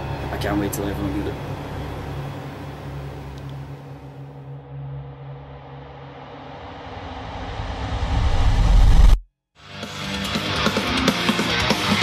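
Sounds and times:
deep rumbling swell: 0:03.8 - 0:09.2.

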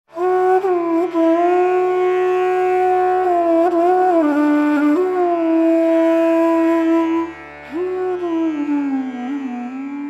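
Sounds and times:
flute-like wind instrument: 0:00.1 - 0:10.0.

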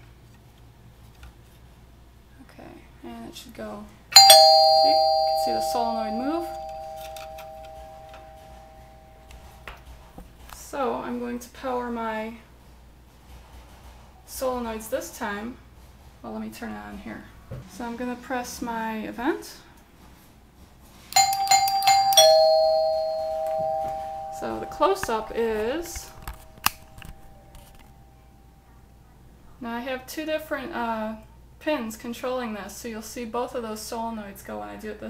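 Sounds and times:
doorbell chime tones ringing: 0:04.2 - 0:09.4, 0:21.2 - 0:27.5.

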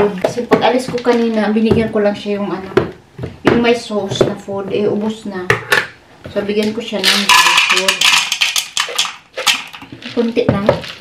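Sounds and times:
plastic bag rustling and crinkling: 0:07.0 - 0:11.0.

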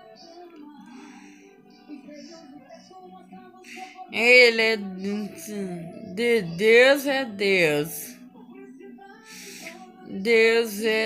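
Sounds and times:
person singing: 0:00.0 - 0:11.0
soft worship song backing music: 0:00.0 - 0:11.0
breathy intake: 0:00.8 - 0:01.6, 0:09.2 - 0:09.8.

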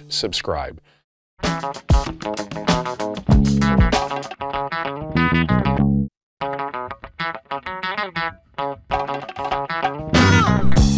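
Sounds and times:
plucked guitar notes: 0:01.4 - 0:10.9.

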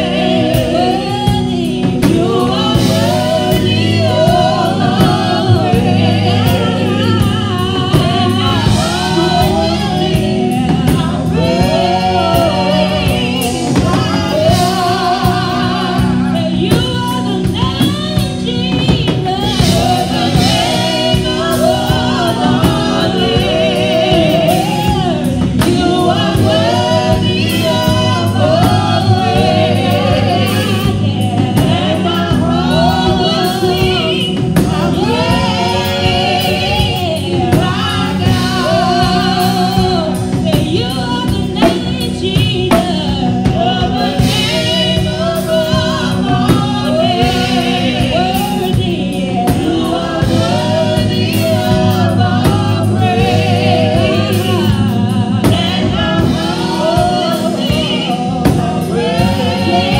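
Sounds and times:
instrumental accompaniment: 0:00.0 - 0:59.9
people singing gospel song: 0:00.0 - 0:59.9.

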